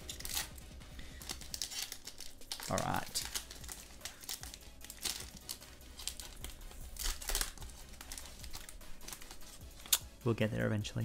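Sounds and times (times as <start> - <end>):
foil wrapper crinkling and tearing: 0.0 - 10.1.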